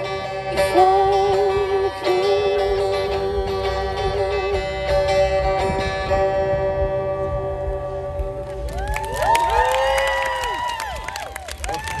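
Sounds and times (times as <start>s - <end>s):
audience cheering and clapping: 8.6s - 12.0s.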